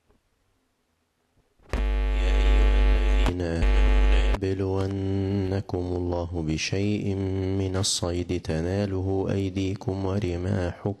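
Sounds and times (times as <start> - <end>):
heavy low hum: 1.7 - 10.5
man reciting through a microphone: 3.3 - 11.0.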